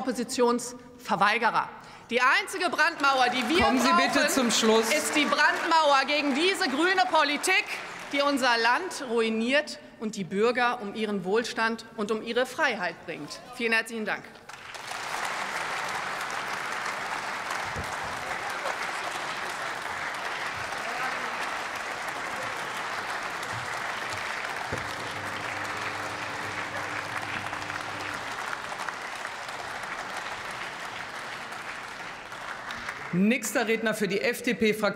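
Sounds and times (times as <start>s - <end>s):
applause: 2.6s - 9.2s, 14.4s - 33.8s.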